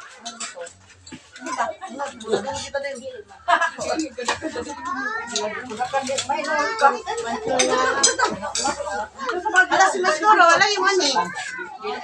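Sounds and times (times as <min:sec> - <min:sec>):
crowd talking indistinctly: 0:00.0 - 0:12.0.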